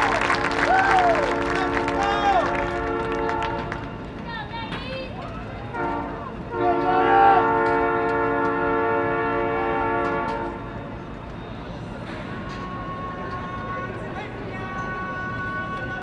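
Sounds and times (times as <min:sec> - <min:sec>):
horn sounding a chord: 0:05.7 - 0:10.6.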